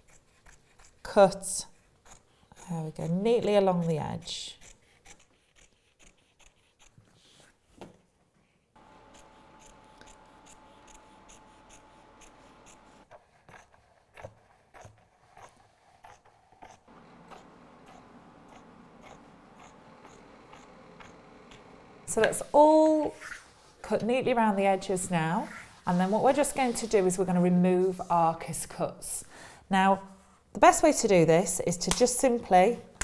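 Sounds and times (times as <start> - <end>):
scissors snipping fabric: 9.1 - 21.7.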